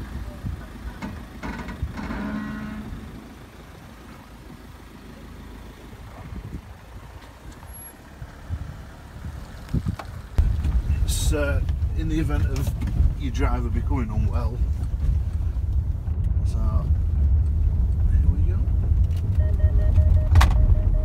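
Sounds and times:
engine running at low crawl: 0.0 - 21.0.

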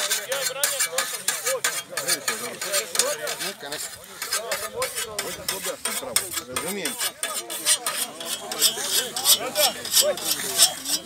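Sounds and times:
people talking: 0.0 - 11.0
scythe cutting grass: 0.0 - 11.0.

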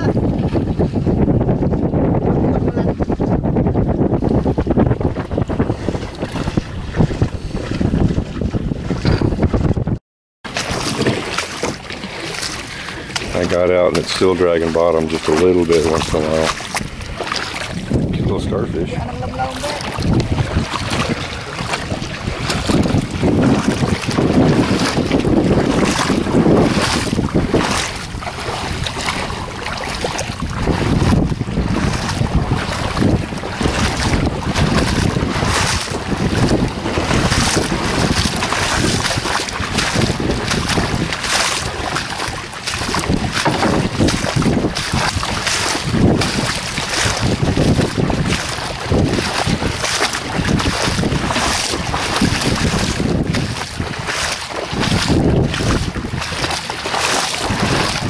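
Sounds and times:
feet splashing through shallow water: 0.0 - 9.8, 10.4 - 58.0
wind buffeting microphone: 0.0 - 58.0.

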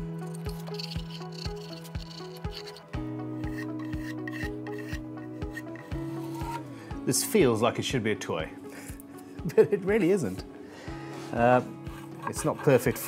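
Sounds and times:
background music with steady beat: 0.0 - 13.0
hand plane scraping wood: 11.3 - 13.0.

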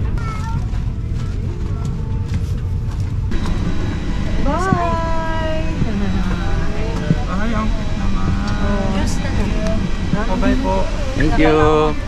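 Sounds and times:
airliner cabin rumble: 0.0 - 12.0
people talking: 4.3 - 12.0.

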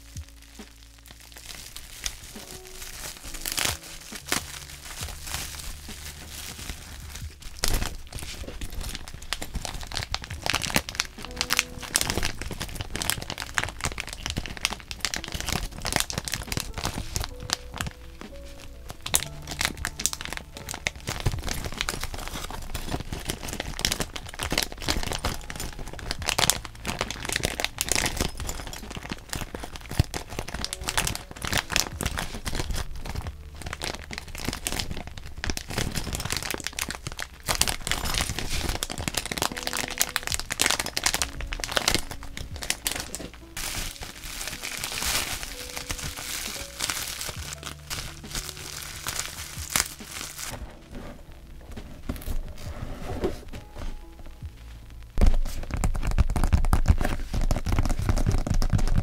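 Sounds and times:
plastic bag crinkling: 0.0 - 59.0
soft lo-fi music: 0.0 - 59.0.

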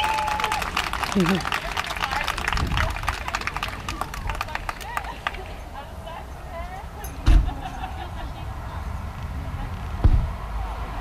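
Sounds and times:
low thump: 7.1 - 7.7, 10.0 - 10.4.

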